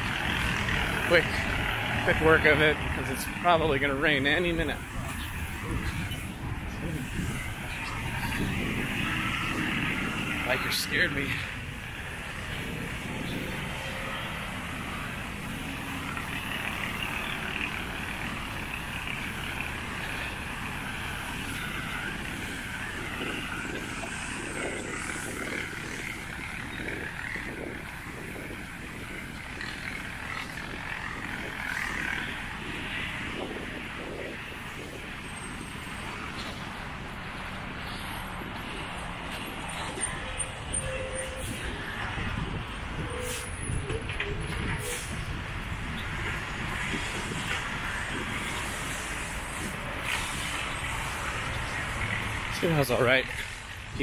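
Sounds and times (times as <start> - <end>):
road traffic hum: 0.0 - 54.0.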